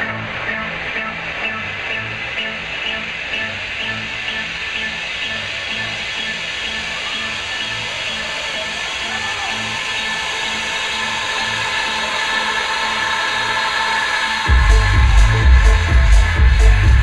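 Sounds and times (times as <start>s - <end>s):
house techno dance music: 0.0s - 17.0s
kick drum: 14.5s - 17.0s.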